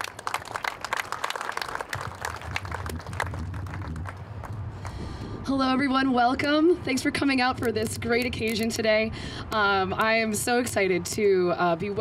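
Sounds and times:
audience applauding: 0.0 - 4.6
low hum: 1.9 - 8.2.

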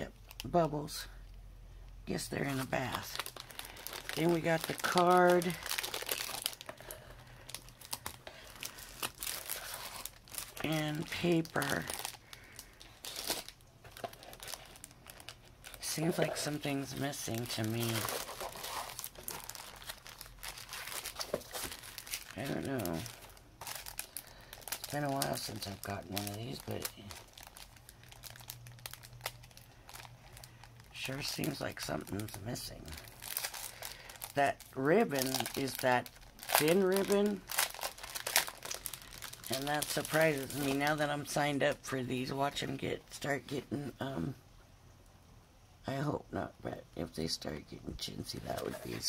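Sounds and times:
low steady hum: 0.0 - 49.0
plastic packaging crinkling: 2.4 - 43.2, 48.2 - 49.0
paper rustling: 13.0 - 24.0.

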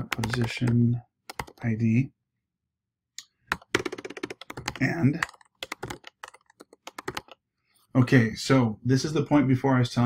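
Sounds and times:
computer keyboard typing: 0.0 - 1.7, 3.5 - 7.4.

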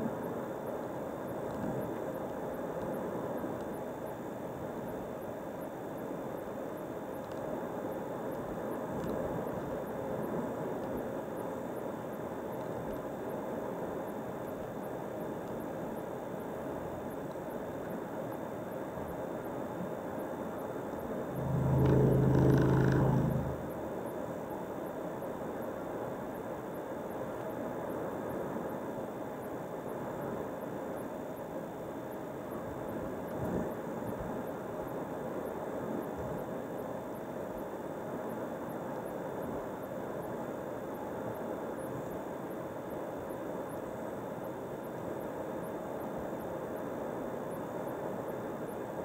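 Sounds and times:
loud low hum with overtones: 21.0 - 24.0.

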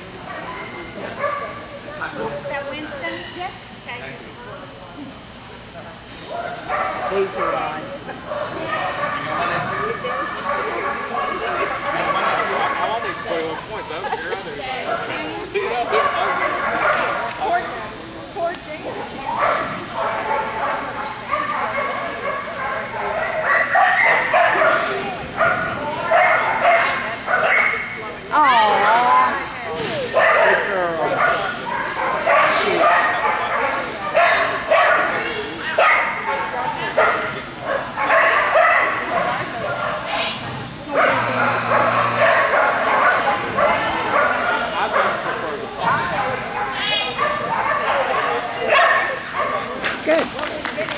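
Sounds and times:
people's voices: 0.0 - 50.9
dogs barking and yipping: 8.3 - 12.9, 15.8 - 17.2, 19.3 - 28.0, 30.1 - 49.8
dog yelping: 40.9 - 44.6.

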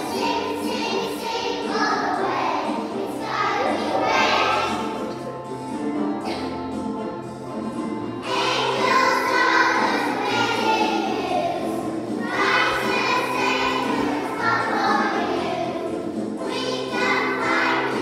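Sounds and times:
children singing together: 0.0 - 5.3, 8.2 - 18.0
musical accompaniment: 0.0 - 18.0.

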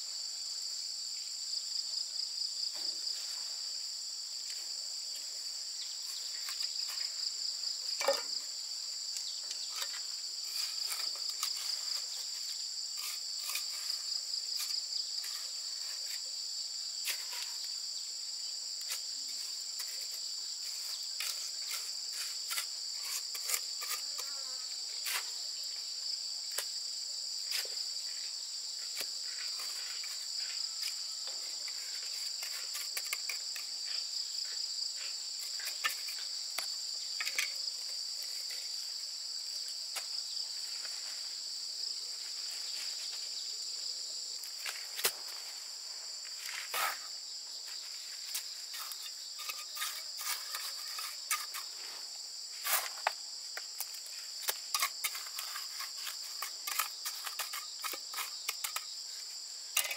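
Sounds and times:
insects chirping: 0.0 - 59.9
trowel scraping and tapping: 9.8 - 14.0, 21.2 - 24.4, 31.7 - 33.7, 35.4 - 38.6, 48.3 - 51.8, 52.6 - 58.9.

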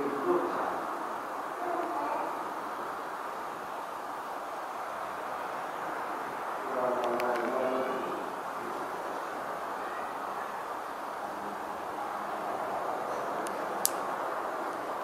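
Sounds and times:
steady background noise: 0.0 - 15.0
person's voice: 6.7 - 8.8.

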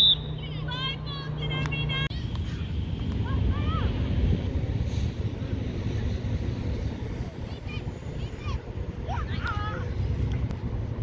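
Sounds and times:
low rumble: 0.0 - 11.0
children calling and shouting: 5.8 - 10.2.

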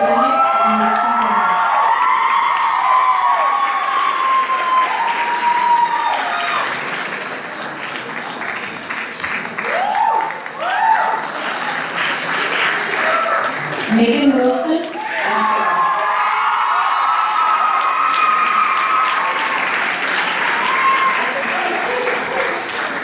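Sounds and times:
audience applauding: 0.0 - 23.0.

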